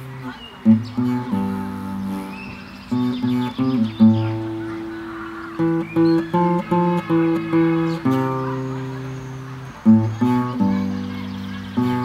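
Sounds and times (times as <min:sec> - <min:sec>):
classical guitar fingerpicked: 0:00.0 - 0:12.0.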